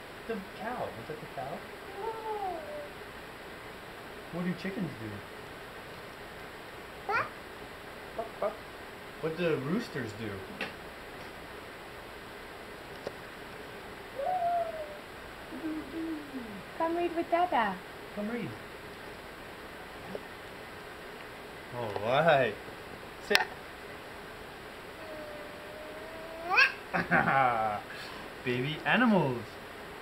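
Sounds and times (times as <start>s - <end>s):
toddler saying moo: 1.9s - 2.9s, 7.1s - 7.3s, 25.0s - 26.8s.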